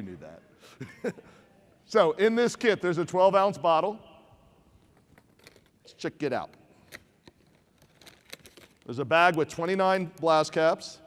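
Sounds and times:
plastic bag crinkling: 7.4s - 9.0s.

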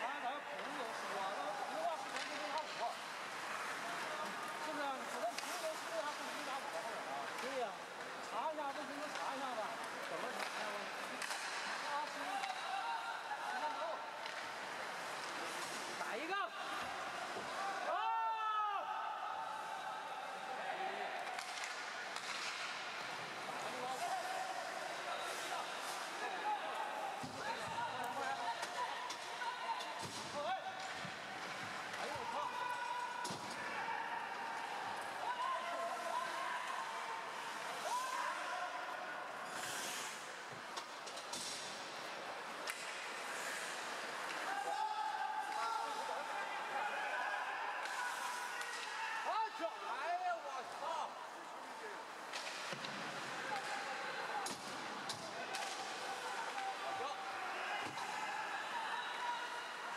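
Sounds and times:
hockey sticks and puck knocking: 21.3s - 22.8s.

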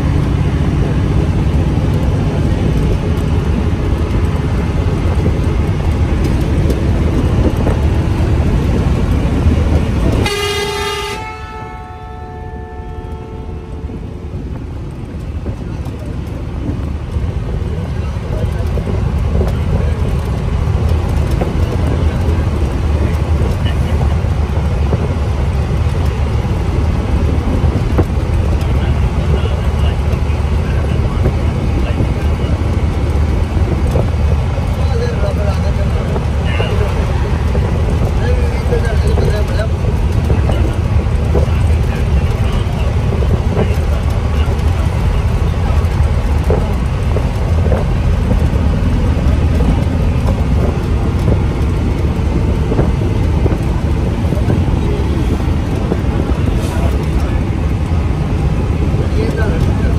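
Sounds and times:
vehicle engine and road noise: 0.0s - 59.9s.

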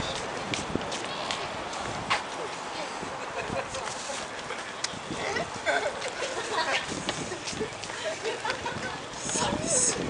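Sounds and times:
crowd talking: 2.3s - 10.0s.

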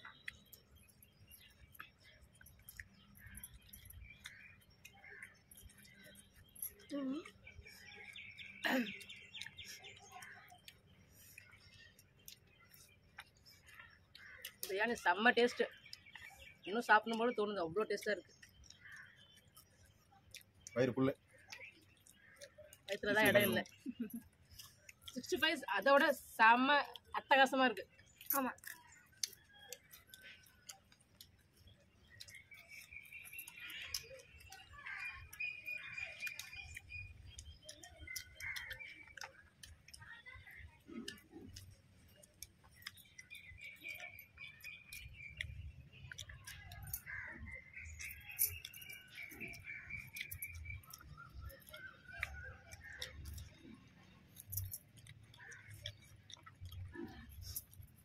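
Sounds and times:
chewing: 0.0s - 15.1s, 15.7s - 25.4s, 26.2s - 27.2s, 27.8s - 58.0s
birds chirping: 0.0s - 58.0s.

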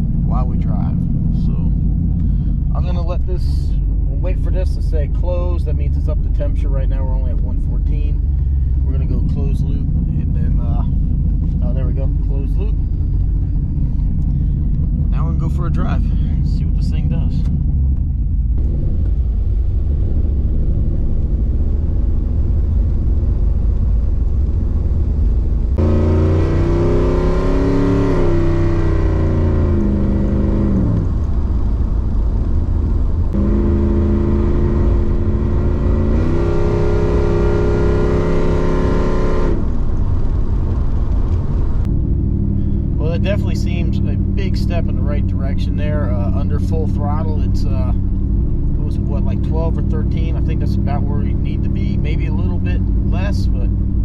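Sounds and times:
car engine rumble from inside cabin: 0.0s - 54.0s.

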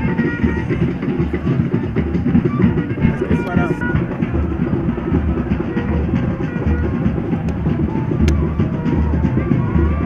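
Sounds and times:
deep bass thuds: 0.0s - 9.5s
drums fast rhythm: 0.0s - 10.0s.

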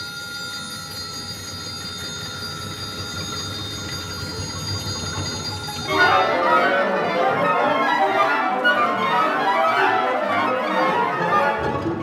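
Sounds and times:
ringing bell-like tones: 0.0s - 7.5s
full orchestra entry: 5.2s - 12.0s.

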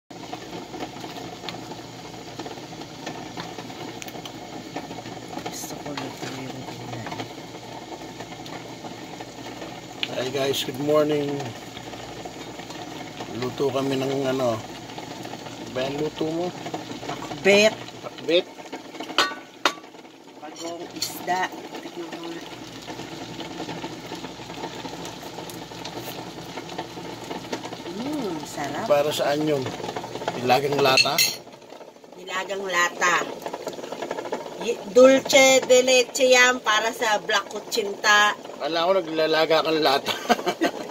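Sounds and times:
stew simmering in a wok: 0.1s - 40.9s.

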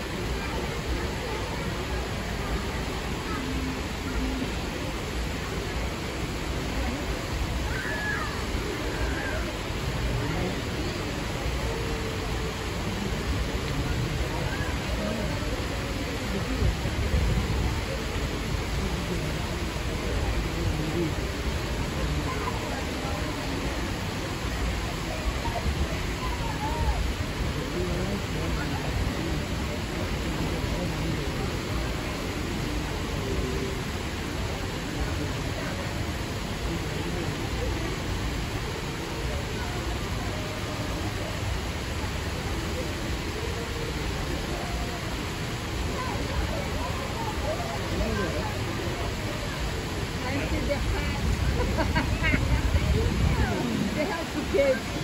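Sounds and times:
crowd chatter: 0.0s - 55.0s
waterfall rushing into pool: 0.0s - 55.0s.

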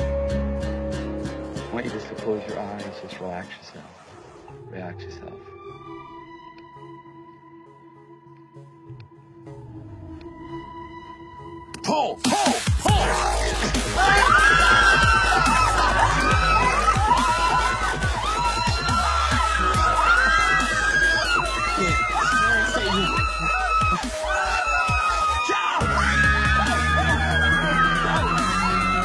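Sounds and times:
people screaming and yelling: 12.2s - 29.0s
music with low bass drone: 12.7s - 25.1s.

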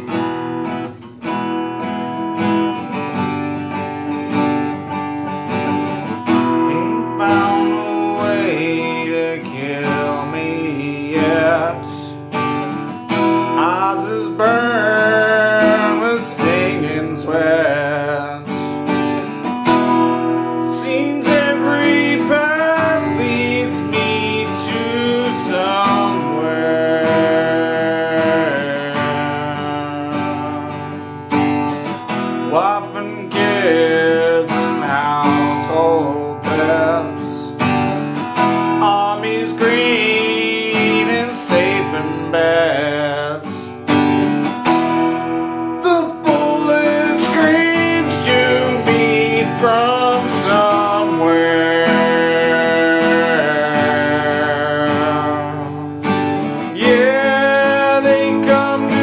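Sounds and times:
man singing: 0.0s - 3.0s, 3.8s - 59.0s
acoustic guitar strumming: 0.0s - 59.0s.

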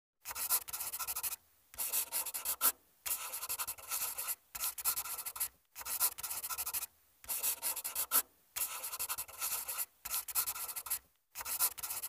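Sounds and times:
marker scratching on board: 0.2s - 12.0s.

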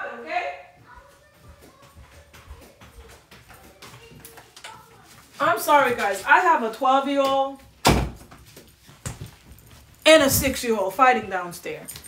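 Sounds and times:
faint knocks and shuffling: 0.7s - 12.0s.

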